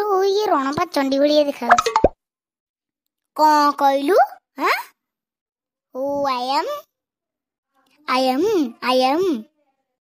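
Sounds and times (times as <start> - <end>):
sharp plop: 1.7 - 2.2.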